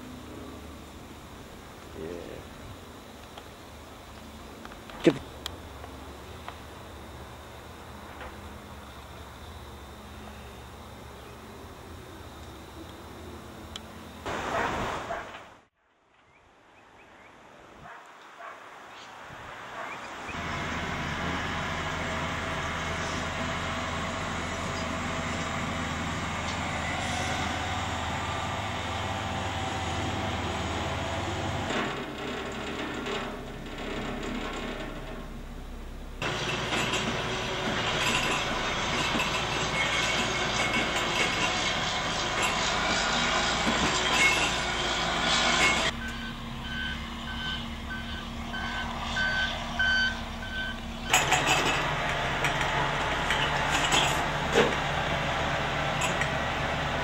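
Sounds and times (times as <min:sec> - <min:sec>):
heavy earthmoving machinery: 0:20.3 - 0:57.0
reversing alarm beeping: 0:45.6 - 0:51.3.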